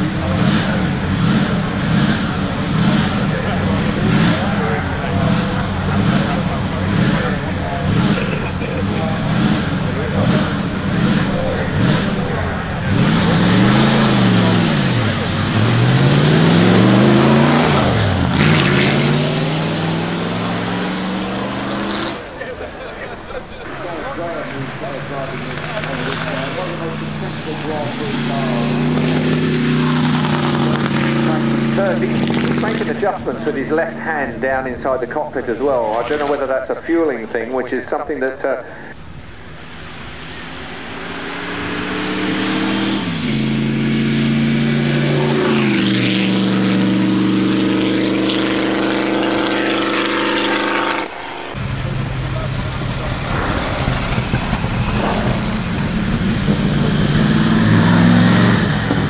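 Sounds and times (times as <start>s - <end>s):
racing car engine revving: 0.0s - 59.0s.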